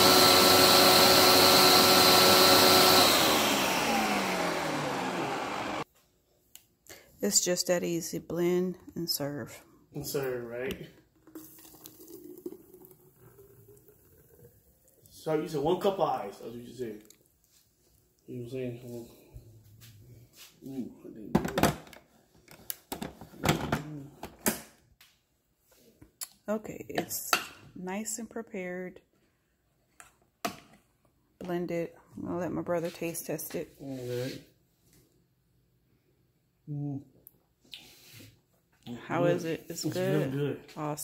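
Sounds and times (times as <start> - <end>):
liquid pouring into bottle: 11.2 - 15.1.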